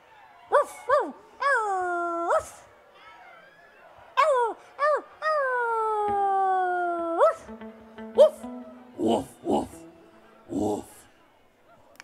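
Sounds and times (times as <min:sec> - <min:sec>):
man yelping through pa: 0:08.2 - 0:11.1.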